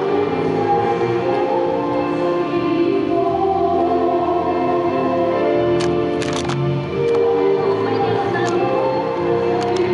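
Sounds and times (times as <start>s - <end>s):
church choir singing a hymn: 0.0s - 6.2s, 6.9s - 9.9s.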